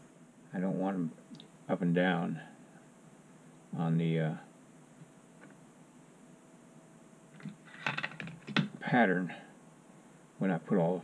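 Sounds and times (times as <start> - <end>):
metal tools clicking on wooden board: 7.4 - 8.7.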